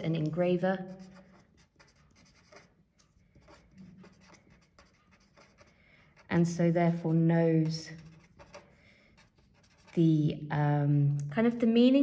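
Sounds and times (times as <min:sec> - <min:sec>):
pen writing on paper: 0:00.9 - 0:02.7, 0:03.4 - 0:05.7, 0:07.9 - 0:10.0.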